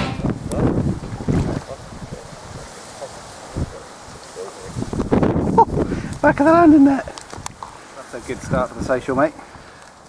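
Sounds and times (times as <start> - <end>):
wind buffeting microphone: 0.0 - 9.7
water splashing and sloshing: 0.8 - 4.9.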